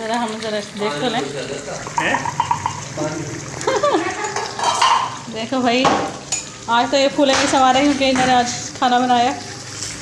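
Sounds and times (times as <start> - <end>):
people talking: 6.7 - 9.5.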